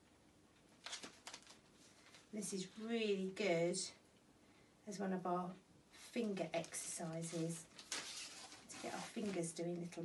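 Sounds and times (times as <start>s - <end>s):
paper bags rustling: 6.3s - 9.9s.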